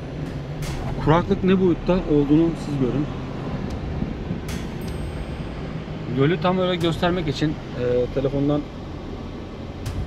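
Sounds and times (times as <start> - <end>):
tyres and engine rumbling: 0.0 - 10.0.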